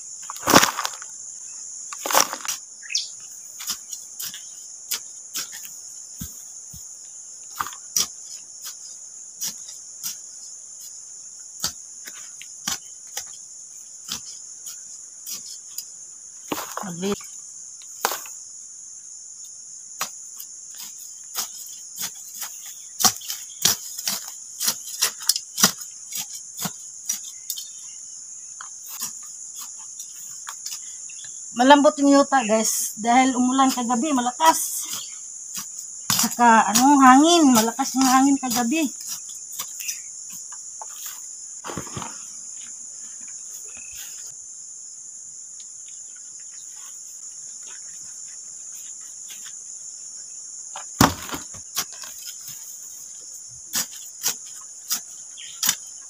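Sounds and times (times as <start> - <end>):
insects droning: 0.0 - 56.0
weeds tossed into plastic tub: 0.2 - 1.1, 1.9 - 2.6, 41.6 - 42.3
grass being pulled up: 0.3 - 1.1, 1.9 - 2.6, 16.5 - 17.1.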